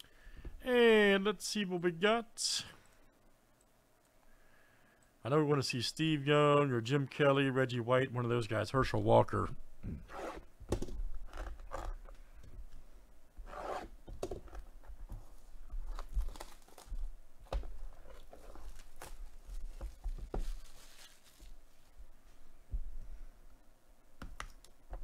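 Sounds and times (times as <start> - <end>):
plastic shrink wrap tearing: 15.8 - 17.0
plastic film rubbing on cardboard: 18.0 - 21.6.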